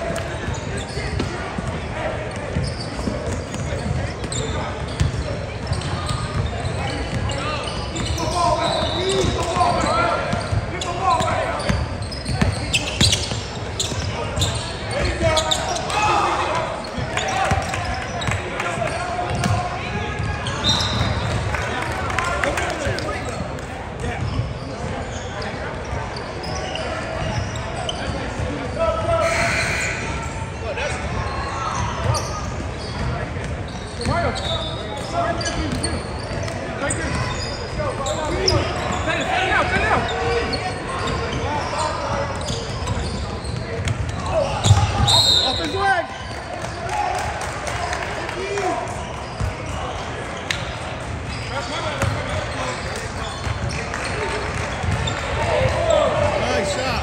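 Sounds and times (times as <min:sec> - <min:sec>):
people talking: 0:00.0 - 0:57.0.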